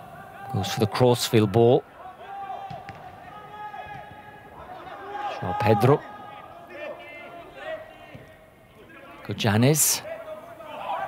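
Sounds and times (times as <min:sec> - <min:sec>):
faint shouts of footballers: 0:00.0 - 0:11.0.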